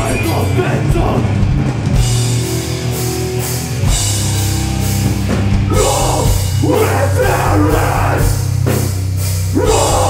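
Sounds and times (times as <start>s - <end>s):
heavy metal band playing: 0.0s - 10.0s
harsh shouted vocal: 5.7s - 8.5s, 9.5s - 10.0s.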